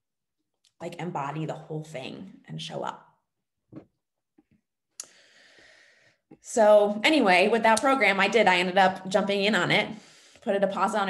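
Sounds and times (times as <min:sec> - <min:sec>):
quiet in-breath: 0:05.0 - 0:06.3.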